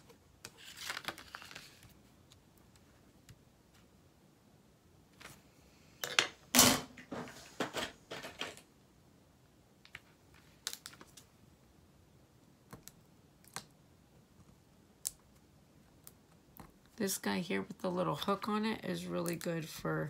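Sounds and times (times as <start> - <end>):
vinyl sheet crinkling: 0.4 - 2.4.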